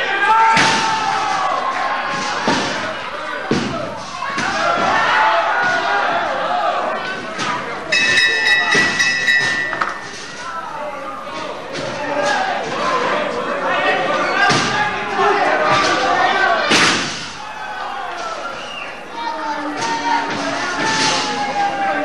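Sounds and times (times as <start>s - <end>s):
crowd voices in a hall: 0.0s - 22.0s.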